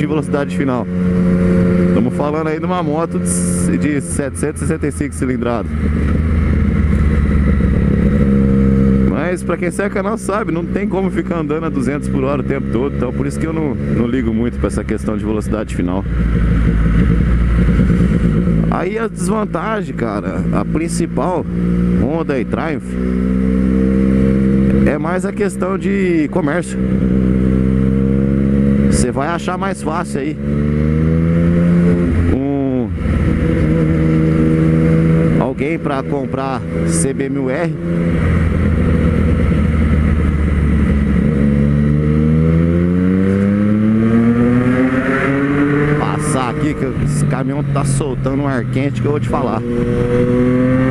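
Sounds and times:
motorcycle engine running: 0:00.0 - 0:50.9.

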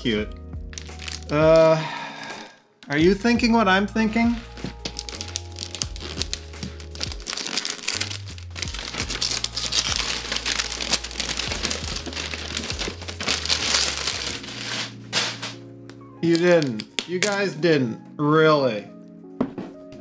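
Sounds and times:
background music with bass line: 0:00.0 - 0:01.8, 0:03.0 - 0:07.3, 0:07.9 - 0:17.3
wrapping paper tearing: 0:00.7 - 0:02.5, 0:04.8 - 0:15.6.

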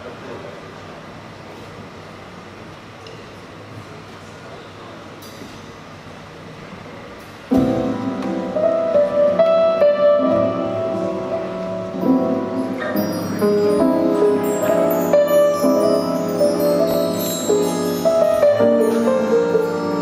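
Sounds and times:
low room noise: 0:00.0 - 0:20.0
live band playing: 0:09.8 - 0:20.0.

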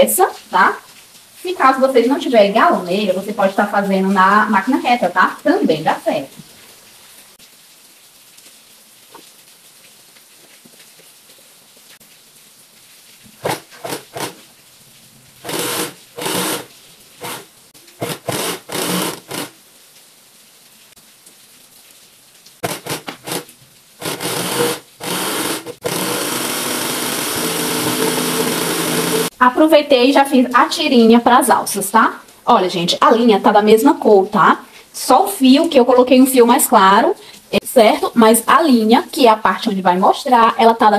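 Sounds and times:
sewing machine running: 0:13.4 - 0:14.4, 0:15.4 - 0:19.5, 0:22.6 - 0:23.4, 0:24.0 - 0:29.3.

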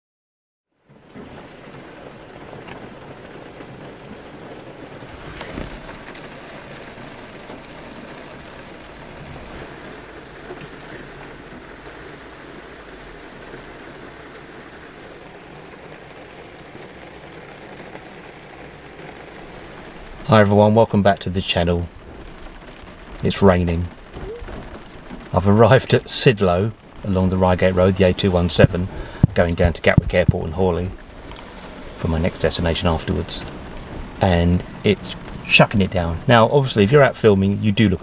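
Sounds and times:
heavy rain drumming on car roof: 0:00.8 - 0:38.0.

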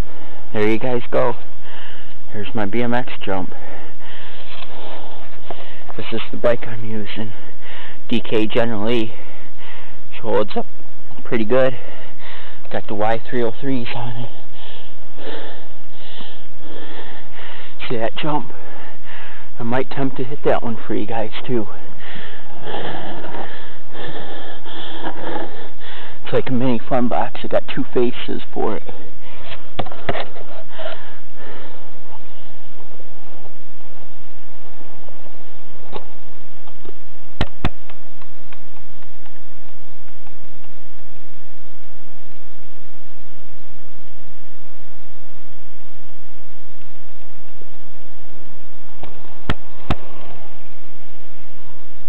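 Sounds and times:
person breathing: 0:00.0 - 0:00.5, 0:01.4 - 0:02.3, 0:03.4 - 0:06.0, 0:07.2 - 0:08.1, 0:09.1 - 0:10.1, 0:11.7 - 0:12.7, 0:13.8 - 0:17.8, 0:18.4 - 0:19.6, 0:21.7 - 0:26.3, 0:28.8 - 0:32.8, 0:49.1 - 0:50.8
steady low hiss: 0:00.0 - 0:52.0.

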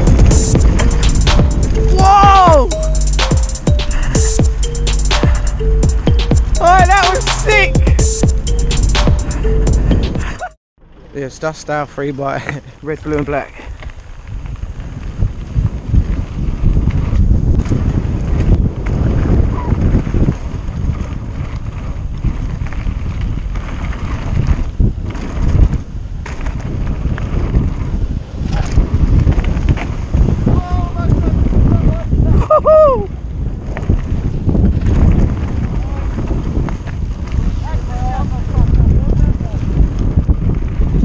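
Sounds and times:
wind buffeting microphone: 0:00.0 - 0:02.6, 0:12.6 - 0:41.0
short bending pitched sound: 0:00.0 - 0:10.6
bike tyres rolling on gravel: 0:10.8 - 0:32.3, 0:33.2 - 0:41.0.

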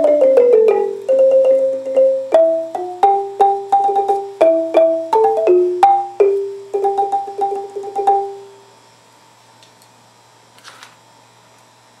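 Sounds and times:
wooden xylophone notes: 0:00.0 - 0:08.5.

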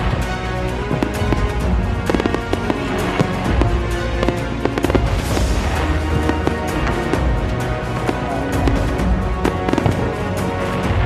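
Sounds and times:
fireworks bangs and crackles: 0:00.0 - 0:11.0
music playing: 0:00.0 - 0:11.0.

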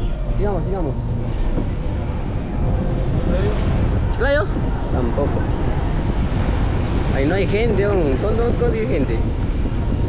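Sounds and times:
minibus engine and road noise: 0:00.0 - 0:10.0.

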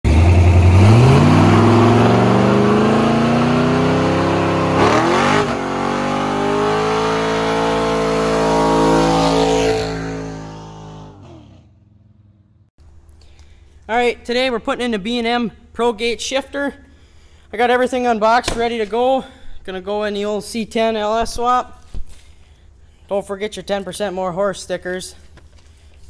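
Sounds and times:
truck engine revving hard: 0:00.1 - 0:12.6.

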